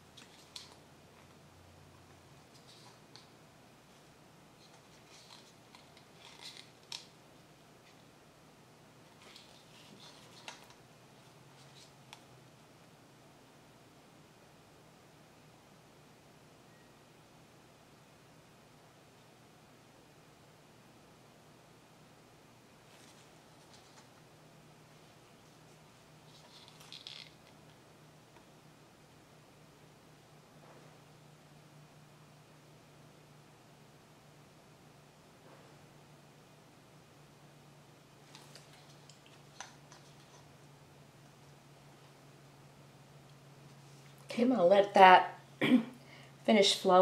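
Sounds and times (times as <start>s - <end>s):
faint steady hum: 0.0s - 47.0s
soft rustling and scraping: 2.0s - 3.3s, 3.9s - 7.1s, 9.0s - 12.2s, 22.8s - 24.2s, 24.9s - 27.7s, 38.2s - 40.5s, 43.6s - 44.4s
plastic cup scraping: 4.6s - 7.1s.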